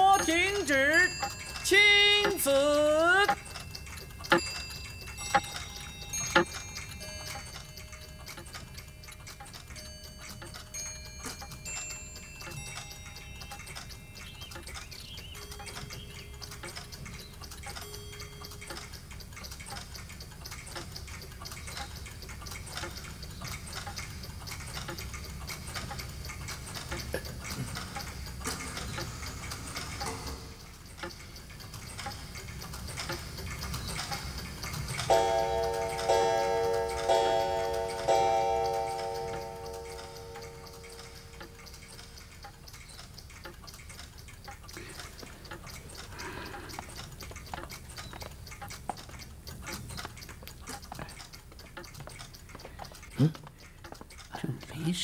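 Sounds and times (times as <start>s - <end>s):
ringing chime melody: 0.0s - 9.0s, 35.1s - 41.8s
many clocks ticking: 0.0s - 55.0s.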